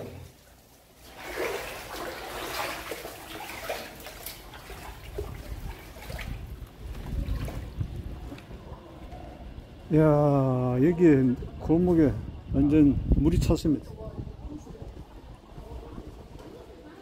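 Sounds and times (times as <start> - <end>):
water sloshing and splashing: 0.0 - 8.8.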